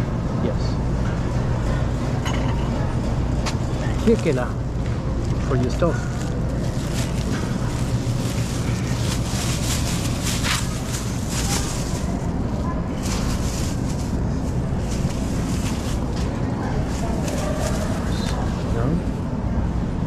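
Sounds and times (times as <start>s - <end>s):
shopping cart wheels rumbling: 2.8s - 20.0s
wire basket rattling: 5.9s - 18.4s.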